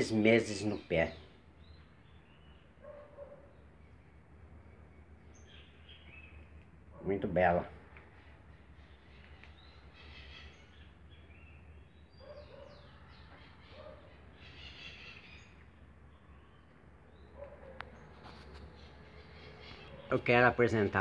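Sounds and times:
faint birds chirping: 0.0s - 21.0s.

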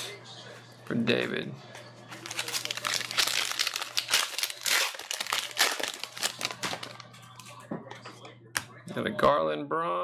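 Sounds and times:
foil wrapper crinkling and tearing: 2.2s - 7.5s.

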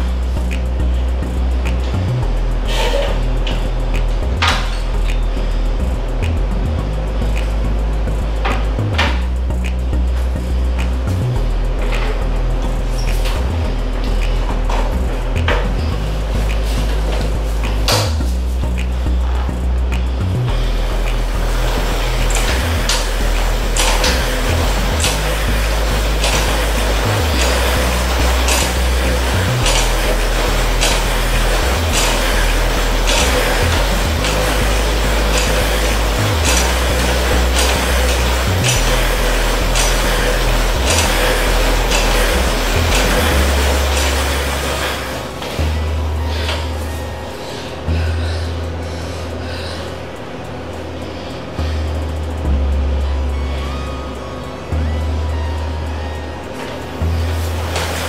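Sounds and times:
music with heavy bass and beat: 0.0s - 58.0s.

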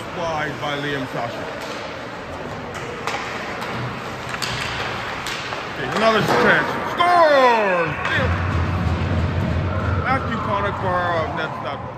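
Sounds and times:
hockey sticks and puck clacking: 0.0s - 9.5s
arena background noise: 0.0s - 11.9s.

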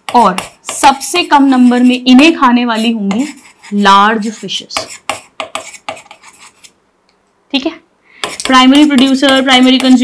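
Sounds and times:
chalk scratching on chalkboard: 0.0s - 6.8s, 8.2s - 10.0s.

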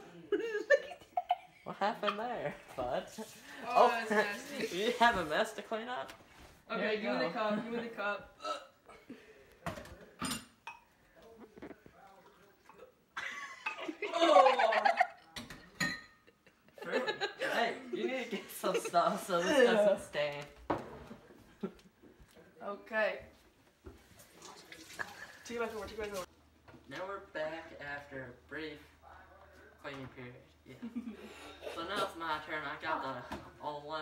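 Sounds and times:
faint voices in a small room: 0.0s - 34.0s
dishes clattering at a sink: 9.6s - 10.9s, 15.3s - 16.3s.

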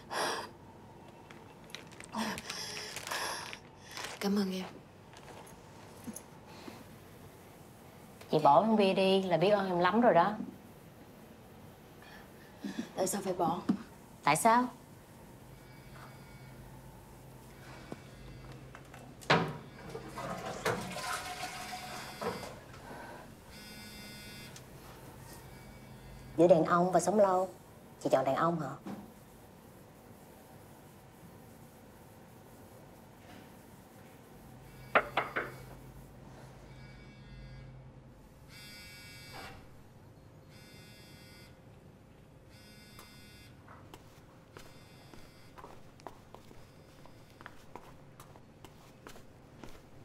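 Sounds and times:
mobile phone buzzing: 15.5s - 16.7s, 23.5s - 24.6s, 38.5s - 39.6s, 40.5s - 41.6s, 42.5s - 43.6s
water running: 19.9s - 22.8s.

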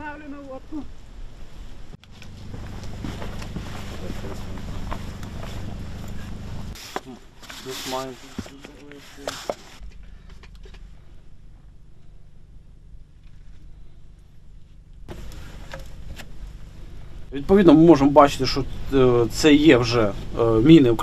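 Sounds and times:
low rumble on microphone: 0.6s - 6.8s
footsteps in dirt: 2.0s - 11.0s
clothing rustling: 2.0s - 11.1s.

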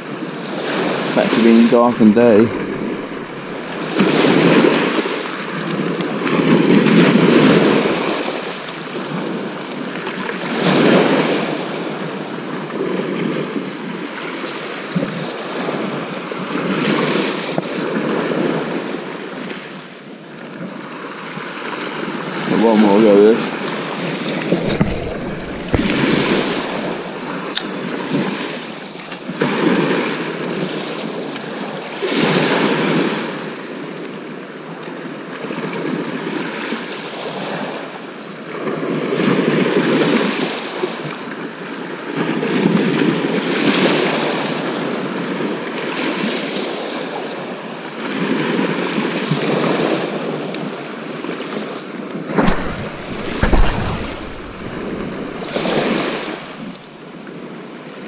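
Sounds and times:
waves washing on shingle beach: 0.0s - 19.8s, 20.6s - 58.0s.

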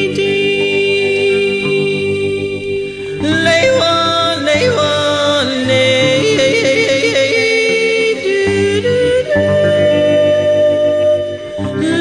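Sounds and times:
acoustic guitar: 0.0s - 12.0s.

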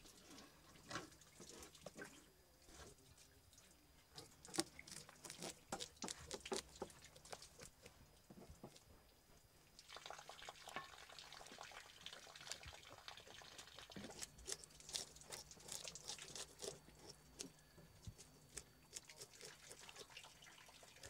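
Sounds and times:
knife scraping fish scales: 14.0s - 17.5s.

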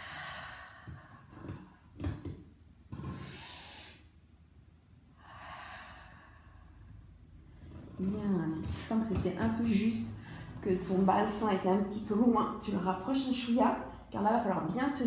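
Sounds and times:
woman breathing slowly: 0.0s - 2.0s, 3.0s - 4.2s, 5.1s - 7.9s, 10.2s - 10.6s.

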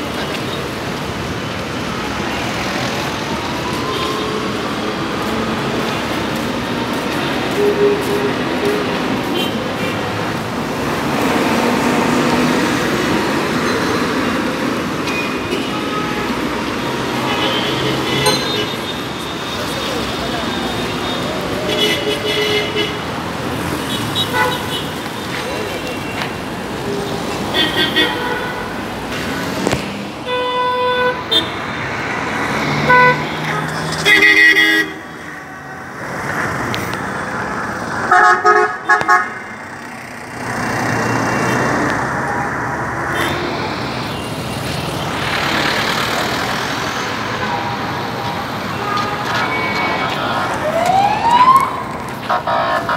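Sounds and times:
passing engines and tyres: 0.0s - 52.9s.

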